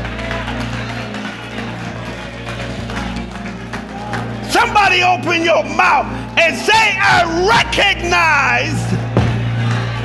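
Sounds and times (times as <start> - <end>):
keyboard sustained low chords: 0.0 - 10.0.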